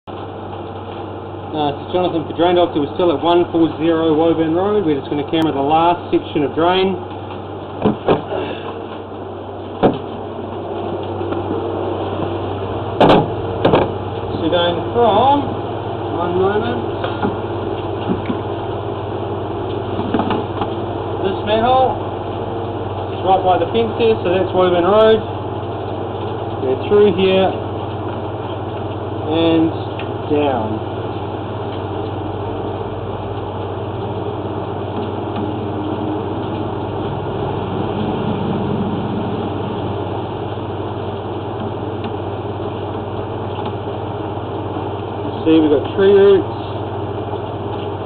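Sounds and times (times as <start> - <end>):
low machine hum: 0.0 - 48.0
engine-like drone with hiss: 0.1 - 48.0.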